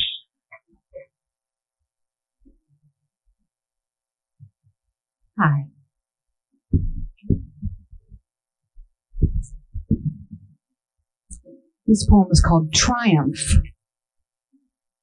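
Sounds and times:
microphone handling thumps: 0:06.7 - 0:08.2, 0:09.2 - 0:10.5.

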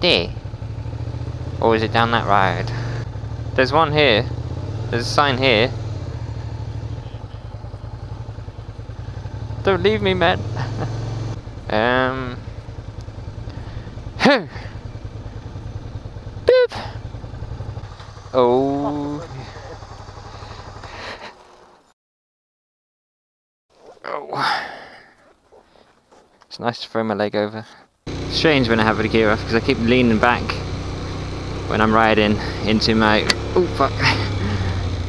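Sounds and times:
motorcycle engine at low revs: 0:00.0 - 0:21.9, 0:28.0 - 0:35.0.

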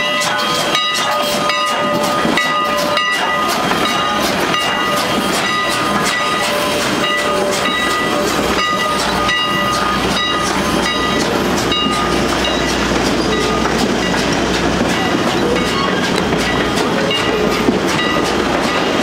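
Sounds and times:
low train rumble: 0:00.0 - 0:19.0
train wheels clicking on rail joints: 0:00.0 - 0:19.0
high-pitched wheel squeaks: 0:04.8 - 0:19.0.

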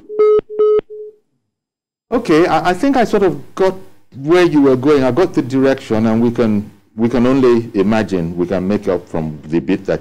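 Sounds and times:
telephone line beeps: 0:00.0 - 0:01.2.

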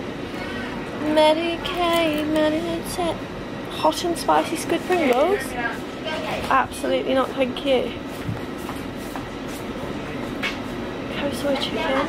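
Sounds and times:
mechanical background hum: 0:00.0 - 0:12.0.

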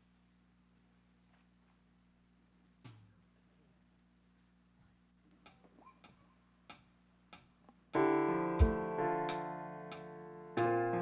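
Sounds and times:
band on keyboard and guitar: 0:08.0 - 0:11.0.

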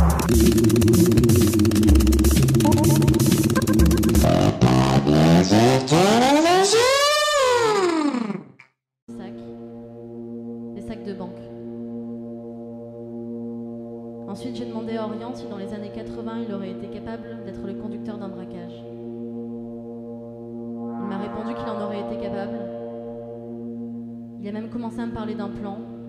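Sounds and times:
electronic music with drum-machine beat: 0:00.0 - 0:04.5
rising and falling pitch sweep: 0:02.5 - 0:05.0, 0:05.6 - 0:08.2, 0:19.7 - 0:24.5
droning chord of held tones: 0:02.6 - 0:04.2, 0:09.4 - 0:16.7, 0:18.2 - 0:26.0.

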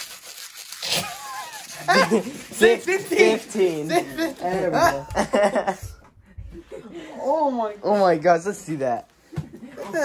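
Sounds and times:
paper scratching against skin: 0:00.0 - 0:05.1
boys crying out and laughing: 0:01.0 - 0:05.9.

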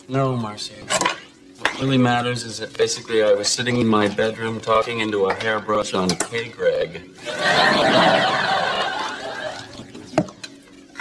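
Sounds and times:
studio audience laughing: 0:07.2 - 0:09.8.

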